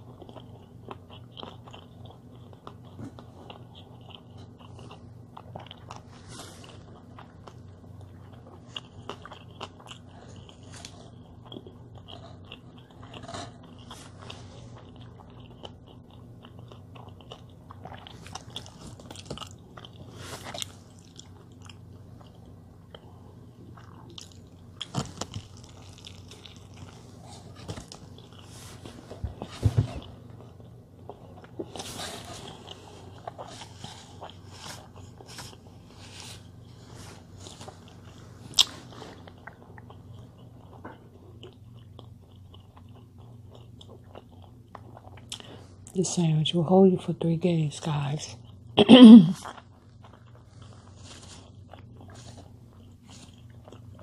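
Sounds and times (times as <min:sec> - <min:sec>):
person chewing: 0:00.0 - 0:46.0, 0:48.4 - 0:54.0.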